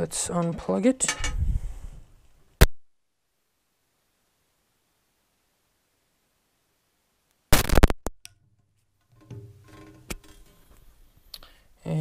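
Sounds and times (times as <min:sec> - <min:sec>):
plug crackle and clicks: 0:07.5 - 0:08.4.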